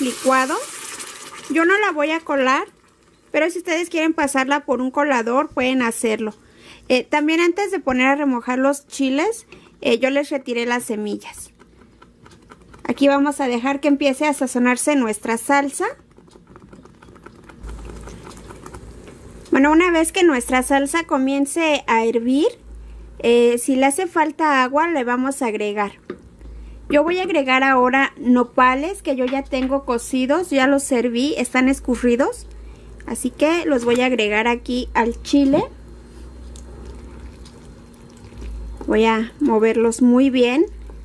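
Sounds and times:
sauce bubbling in a pan: 0.0 - 4.1, 16.0 - 19.5, 35.8 - 41.0
sauce crackling and popping in pot: 10.4 - 20.7, 32.4 - 41.0.

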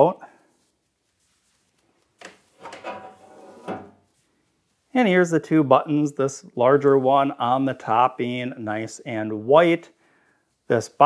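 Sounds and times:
metal tray scraping slide: 2.6 - 4.0.

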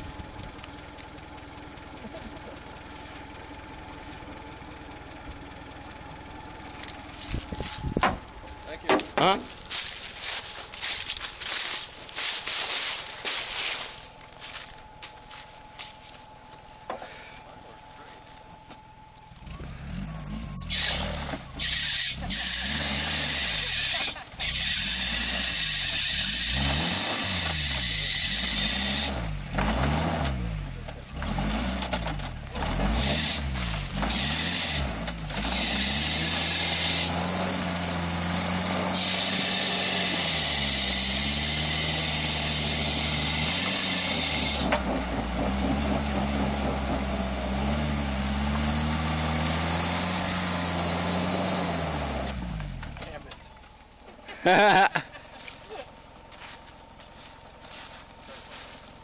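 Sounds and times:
wheels spinning in mud: 6.5 - 16.8, 17.9 - 59.0
engine revving hard: 19.4 - 53.2
high squeal: 19.5 - 30.6, 31.2 - 52.8.

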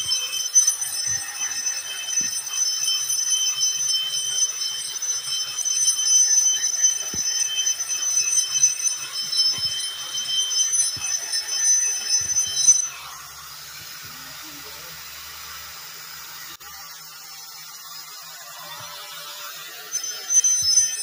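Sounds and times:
angle grinder grinding stone: 0.0 - 21.0.

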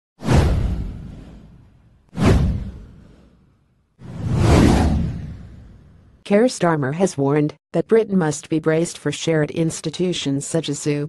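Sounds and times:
whoosh sound effects: 2.2 - 6.0.

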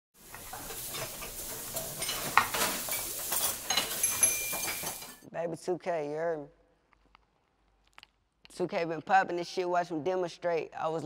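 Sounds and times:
food sizzling in a frying pan: 0.2 - 5.2
cookware clinks: 0.3 - 5.2.

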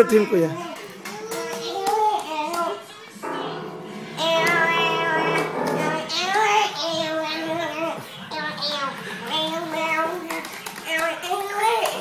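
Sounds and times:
child singing: 0.6 - 12.0.

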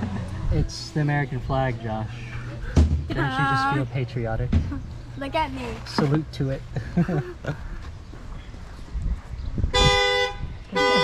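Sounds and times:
vehicle horn honking: 9.7 - 11.0.

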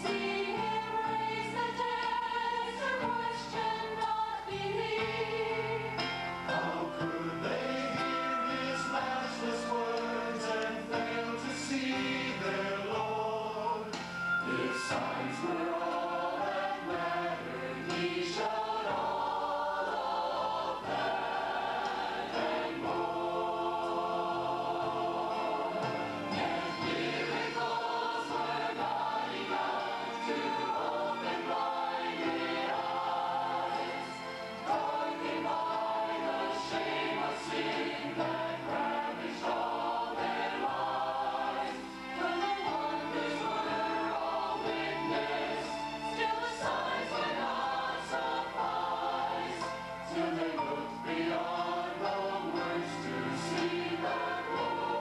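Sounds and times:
mixed choir singing: 0.0 - 55.0.

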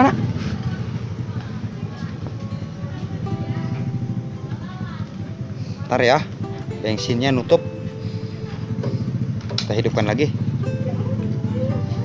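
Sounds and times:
two-stroke engine idling: 0.0 - 12.0.

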